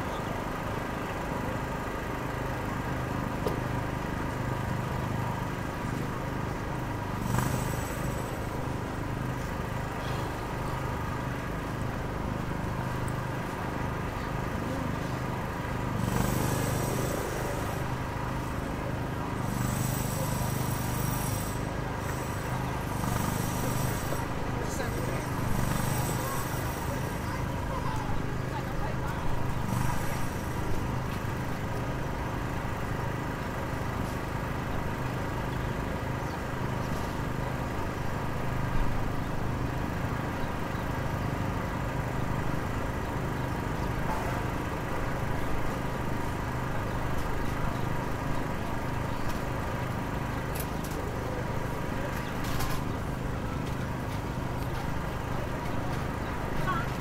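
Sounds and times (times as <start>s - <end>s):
low engine drone: 0.0s - 57.0s.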